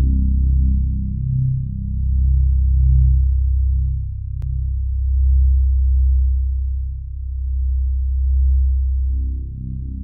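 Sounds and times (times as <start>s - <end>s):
low synthesizer drone: 0.0s - 10.0s.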